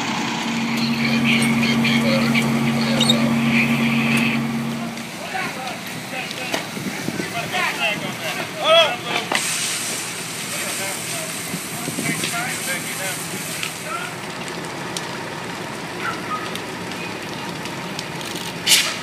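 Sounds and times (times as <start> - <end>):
building fire roaring and crackling: 0.0 - 19.0
faint voices: 0.4 - 9.3.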